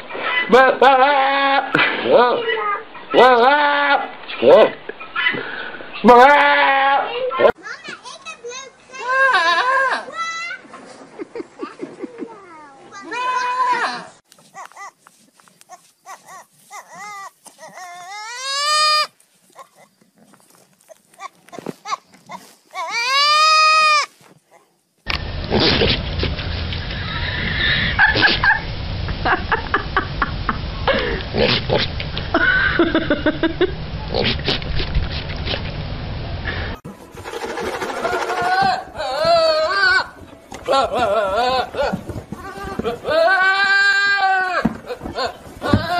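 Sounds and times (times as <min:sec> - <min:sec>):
long loud goat bleats: 0:03.2 - 0:04.1, 0:06.1 - 0:07.1, 0:09.0 - 0:10.1, 0:13.1 - 0:14.2, 0:38.5 - 0:45.9
adult goat bleating: 0:06.1 - 0:07.1, 0:09.0 - 0:10.1, 0:13.1 - 0:15.0, 0:15.7 - 0:19.9, 0:20.9 - 0:24.2, 0:38.4 - 0:45.9
young goat short bleats: 0:09.1 - 0:10.0, 0:15.7 - 0:19.9.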